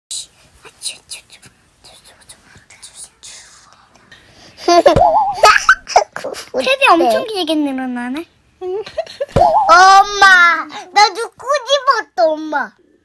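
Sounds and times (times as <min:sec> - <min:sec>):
children whispering: 0:00.1 - 0:04.3
child's high voice: 0:09.5 - 0:12.8.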